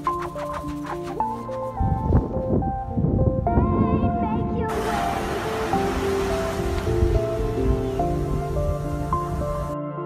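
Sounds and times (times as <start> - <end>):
background music with held notes: 0.0 - 10.0
ocean surf breaking: 4.7 - 9.8.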